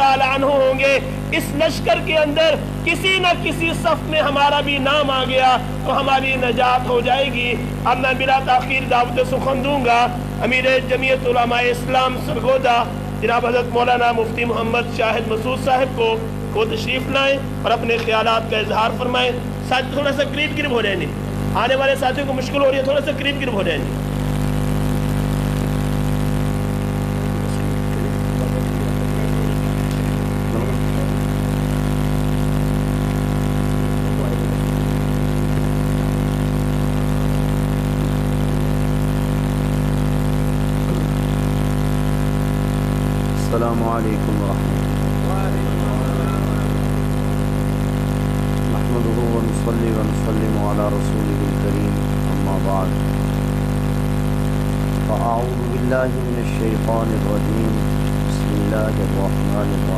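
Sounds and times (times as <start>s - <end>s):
low droning hum: 3.6s - 59.9s
faint voices: 26.6s - 31.4s, 33.8s - 34.7s, 40.8s - 41.4s, 43.4s - 47.1s.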